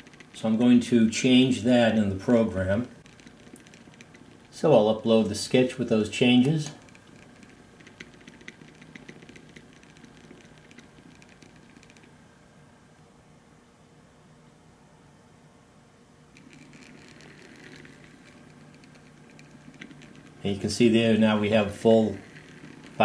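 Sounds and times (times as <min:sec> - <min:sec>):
low motor hum: 0:00.0 - 0:13.0, 0:16.2 - 0:23.0
stepper motor ticking: 0:03.0 - 0:12.1, 0:16.4 - 0:23.0.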